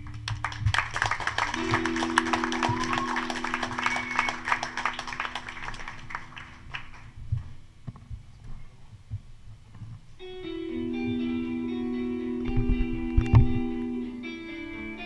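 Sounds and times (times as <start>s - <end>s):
band holding low chord: 0.0s - 7.0s
audience applause: 0.0s - 7.2s.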